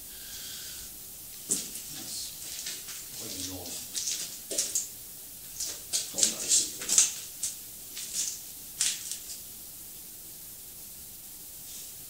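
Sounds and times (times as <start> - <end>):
short hissing sounds: 0.0 - 3.9, 11.5 - 12.0.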